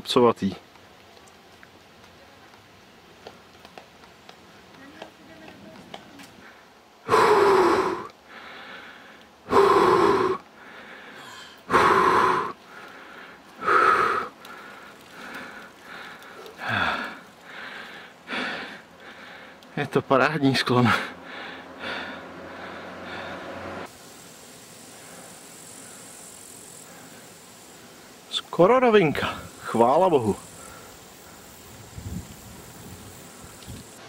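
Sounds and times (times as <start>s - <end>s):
heavy breathing: 6.4s - 19.8s, 20.9s - 23.9s, 30.4s - 31.6s.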